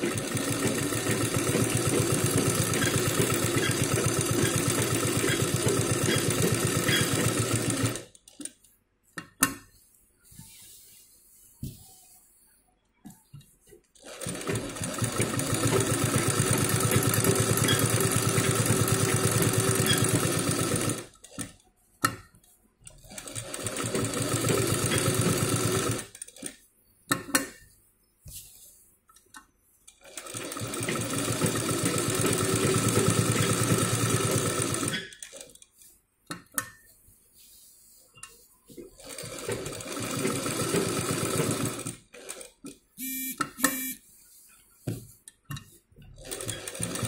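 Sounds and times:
sewing machine stitching: 0.0s - 8.6s, 13.6s - 26.7s, 29.9s - 35.6s, 38.3s - 44.0s, 45.6s - 47.0s.

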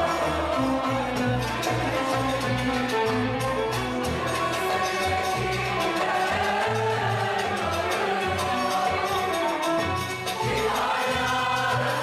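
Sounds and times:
mixed choir singing: 0.0s - 12.0s
violin: 0.0s - 12.0s.

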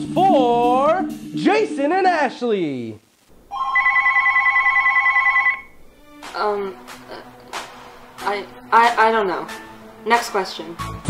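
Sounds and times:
cordless phone ringing: 3.5s - 5.8s.

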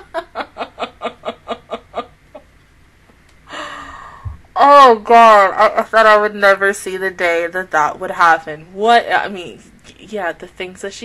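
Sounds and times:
woman laughing hard: 0.0s - 2.5s
long breathy sound: 3.4s - 4.4s.

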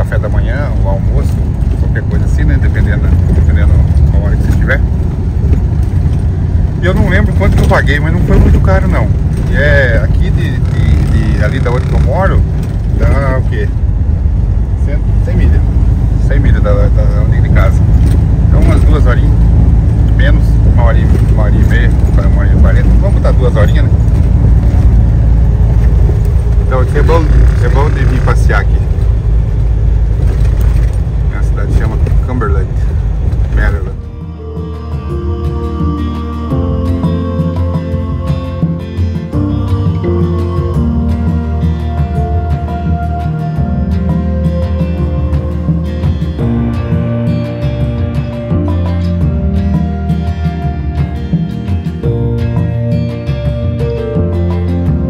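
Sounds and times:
road noise: 0.0s - 55.0s
truck engine rumble: 0.0s - 55.0s
soft background music: 33.5s - 55.0s.

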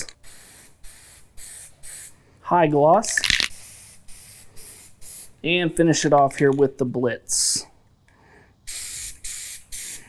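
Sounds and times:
aerosol spray can hissing: 0.2s - 2.1s, 3.2s - 5.4s, 8.7s - 10.0s.

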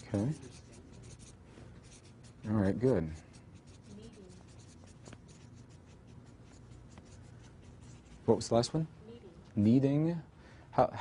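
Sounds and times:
marker scratching on paper: 0.0s - 8.6s.

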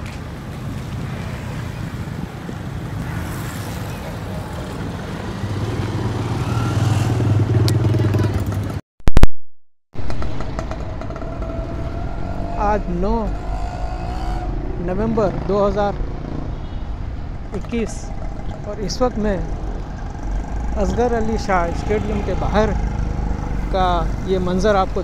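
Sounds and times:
street traffic noise: 0.0s - 8.8s, 10.0s - 25.0s
vehicle engine: 0.0s - 8.8s, 10.0s - 25.0s.

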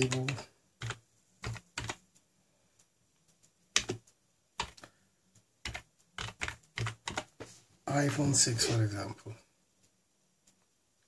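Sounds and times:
typing on computer keyboard: 0.0s - 2.2s, 3.2s - 5.0s, 5.6s - 7.4s.

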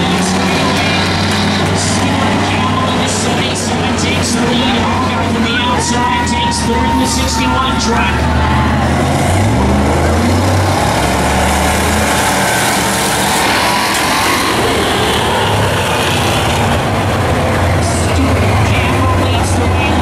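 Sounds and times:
stock car engines racing: 0.0s - 20.0s.

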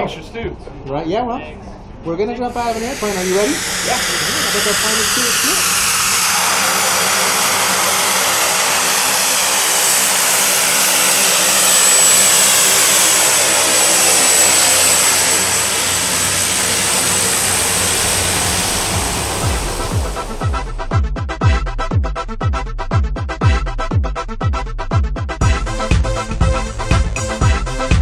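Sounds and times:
turboprop plane taxiing: 1.7s - 21.0s, 25.4s - 28.0s
electronic music with a beat: 19.4s - 28.0s.

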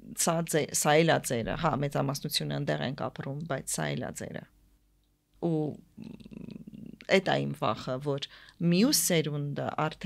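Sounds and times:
woman speaking: 0.0s - 4.6s, 5.4s - 10.0s.

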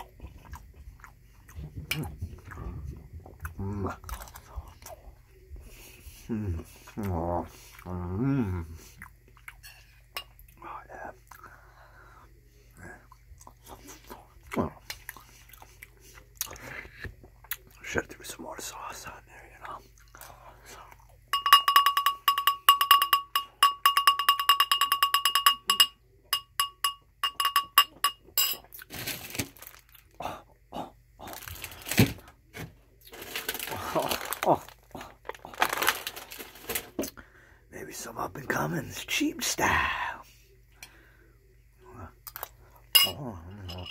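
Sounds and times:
wet chewing and mouth sounds: 0.0s - 5.7s, 6.5s - 11.5s, 13.0s - 17.8s, 19.6s - 21.3s
metal spoon clinking ceramic bowl: 21.4s - 28.6s, 43.0s - 43.9s.

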